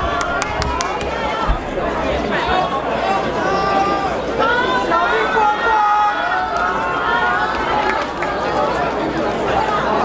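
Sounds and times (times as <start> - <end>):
crowd talking: 0.0 - 10.0.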